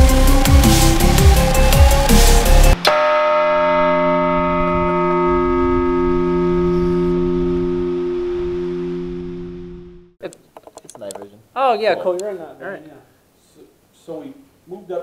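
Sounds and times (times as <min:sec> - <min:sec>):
large bell ringing: 0:02.7 - 0:10.1.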